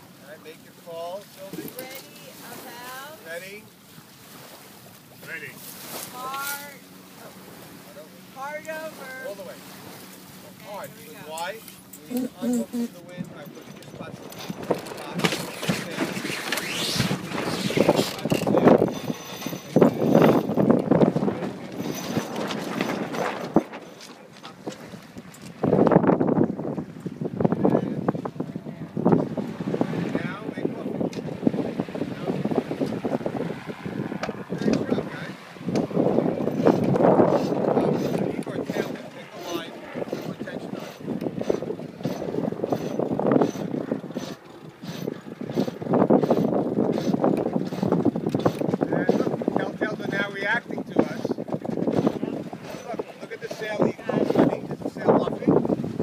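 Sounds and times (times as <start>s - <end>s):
indistinct voices: 12.0s - 13.0s
wind on microphone: 12.1s - 56.0s.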